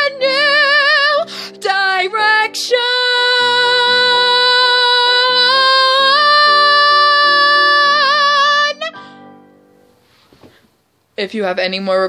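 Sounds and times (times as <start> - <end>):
woman singing a long note: 2.1 - 9.0.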